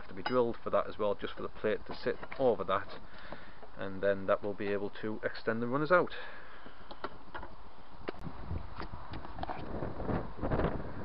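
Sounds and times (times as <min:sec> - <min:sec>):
wind rumbling on microphone: 0:08.0 - 0:11.0.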